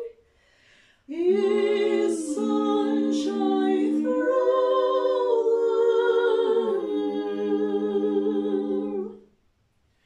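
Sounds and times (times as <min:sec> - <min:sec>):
women singing close harmony: 0:01.1 - 0:09.3.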